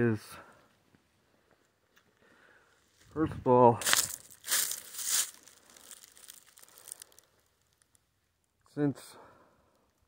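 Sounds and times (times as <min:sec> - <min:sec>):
footsteps crunching dry leaves: 0:02.9 - 0:07.4
leaves rustling: 0:03.7 - 0:08.0.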